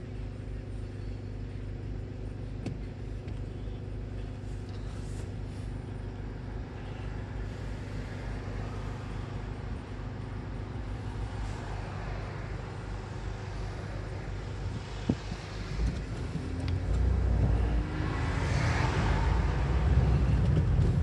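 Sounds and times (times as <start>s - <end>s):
car engine idling: 0.0s - 21.0s
road traffic: 0.0s - 21.0s.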